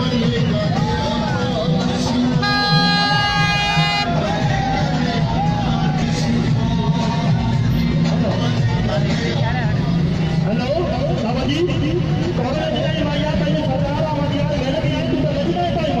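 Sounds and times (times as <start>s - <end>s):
voices: 0.0s - 7.4s
loud music: 0.0s - 8.2s
vehicle engines in traffic: 0.0s - 16.0s.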